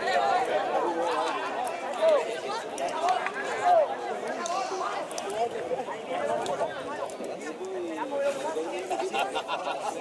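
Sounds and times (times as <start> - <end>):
people talking and calling: 0.0 - 10.0.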